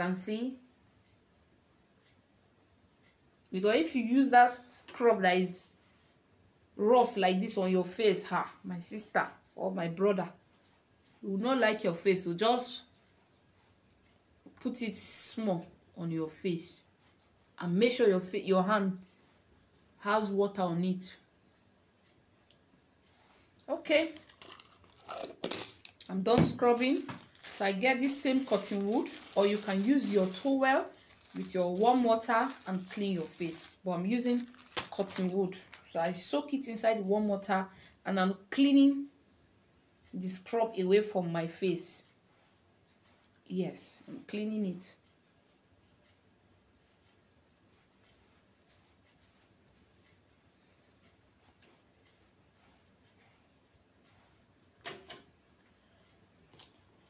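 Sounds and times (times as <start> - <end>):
cotton wool rubbing on skin: 6.9 - 54.7
cotton wool rustling and tearing: 23.1 - 36.9, 46.8 - 54.4.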